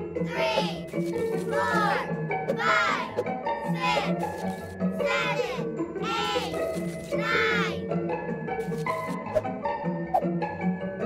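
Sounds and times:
light children's music: 0:00.0 - 0:11.0
child counting in sing-song: 0:00.2 - 0:04.2, 0:05.0 - 0:06.6, 0:07.2 - 0:07.8.

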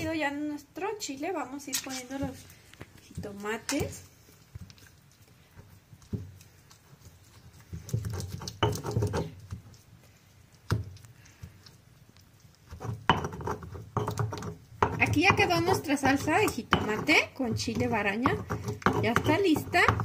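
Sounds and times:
wet mashing in stone mortar: 0:01.6 - 0:20.0.

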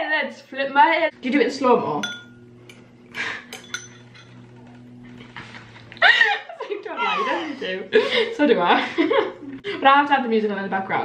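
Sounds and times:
metal spoon clinking on ceramic bowl: 0:02.0 - 0:02.4, 0:03.5 - 0:04.4.

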